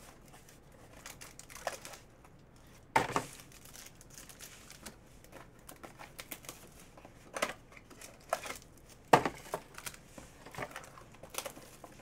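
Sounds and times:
plastic wrapper crinkling: 0.2s - 12.0s.

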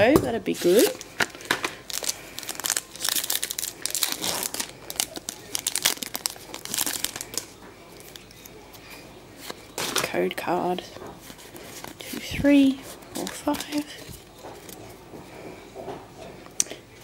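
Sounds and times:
foil wrapper crinkling: 0.4s - 8.5s.

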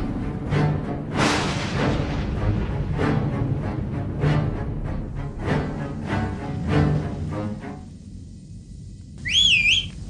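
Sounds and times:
short rising whistle: 9.2s - 9.9s.

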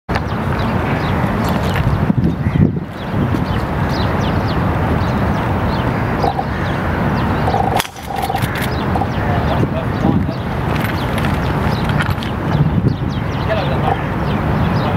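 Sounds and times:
bird chirps: 2.3s - 14.9s
distant murmuring voices: 5.0s - 14.9s
sharp clicks: 7.6s - 9.1s.

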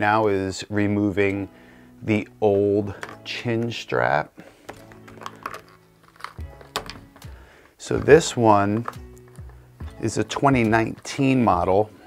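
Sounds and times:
soft background music: 0.0s - 12.0s
plastic clicks and taps: 8.8s - 9.6s.

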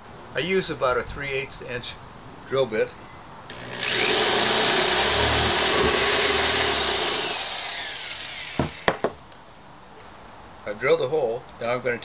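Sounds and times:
drill bit grinding into metal: 3.5s - 8.9s
electric drill whining: 3.5s - 9.0s
sharp knocks: 5.2s - 6.5s, 8.6s - 9.2s.

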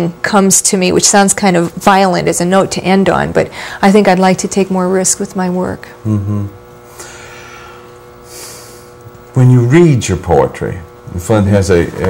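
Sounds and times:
steady hum: 0.0s - 12.0s
hissy intake of breath: 6.9s - 9.0s.

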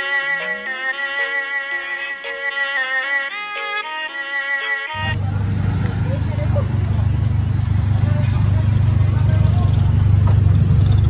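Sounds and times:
low rumble of street traffic: 4.9s - 11.0s
faint voices: 5.0s - 10.5s.

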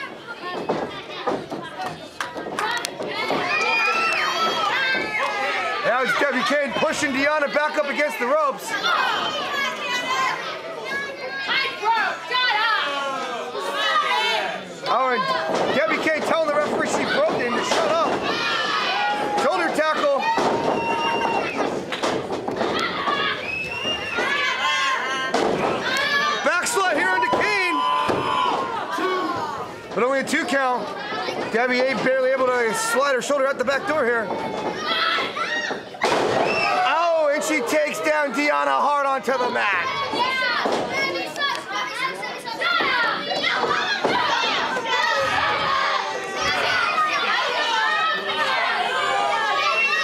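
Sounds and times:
voices shouting: 3.1s - 21.8s, 22.7s - 29.8s.

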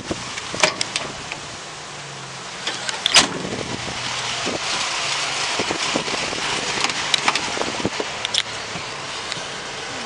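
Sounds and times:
van door metallic clunk: 0.0s - 1.3s, 2.6s - 3.6s.

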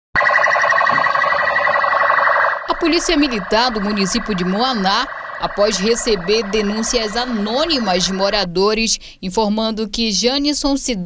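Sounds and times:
police siren pulsing: 0.1s - 8.6s.

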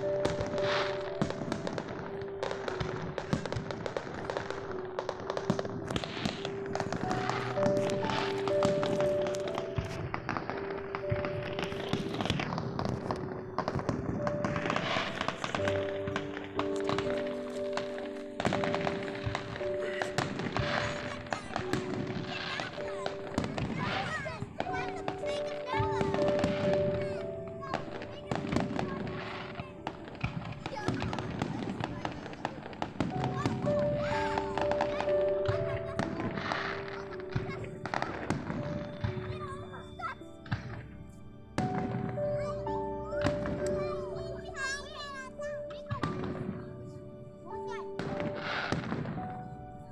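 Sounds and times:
distant fireworks crackling and popping: 0.0s - 49.9s
music with held notes: 0.0s - 49.9s.

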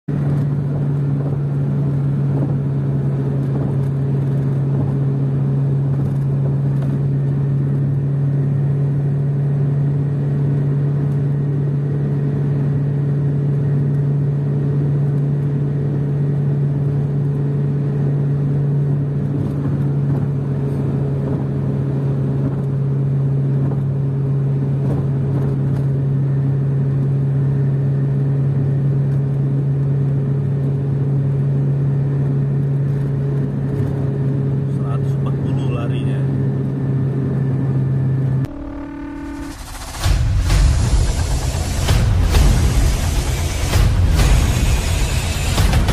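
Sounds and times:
vehicle engine and road noise: 0.0s - 45.9s.

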